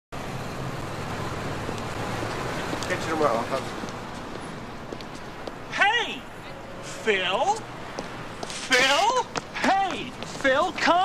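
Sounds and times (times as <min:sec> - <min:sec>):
car engines droning: 0:00.1 - 0:11.0
hiss of passing traffic: 0:00.2 - 0:11.0.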